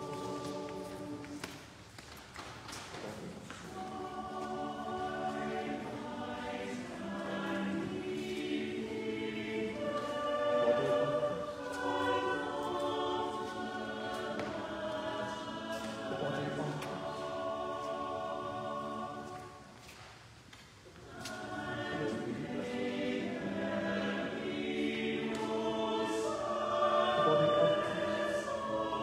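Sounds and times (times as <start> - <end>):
church choir singing: 0.0 - 1.8, 3.0 - 20.1, 21.0 - 29.0.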